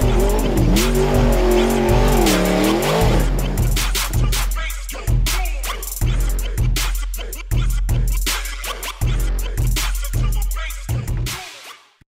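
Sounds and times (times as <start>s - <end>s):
race car engine revving hard: 0.0s - 4.4s.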